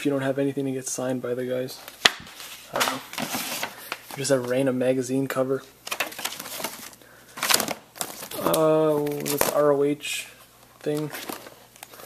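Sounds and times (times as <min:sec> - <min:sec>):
packaging rustling and crinkling: 0:01.8 - 0:04.6, 0:05.8 - 0:09.8, 0:10.6 - 0:12.0.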